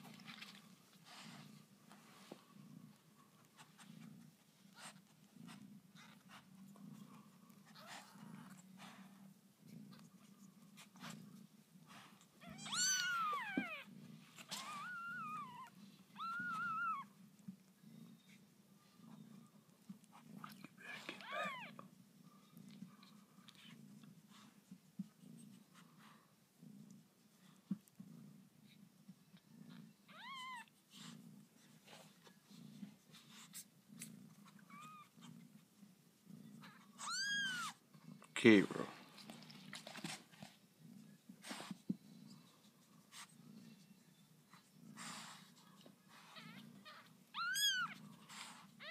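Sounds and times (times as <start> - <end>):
soft clicks and rustles: 0.0 - 5.4, 38.9 - 43.0
faint low hum: 0.0 - 48.9
kittens mewing: 12.4 - 17.1, 36.7 - 37.8.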